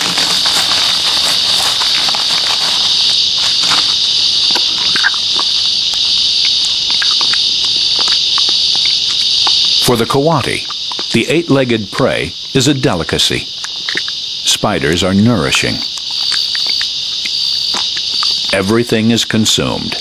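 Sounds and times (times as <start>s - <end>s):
insects chirping: 0.0s - 20.0s.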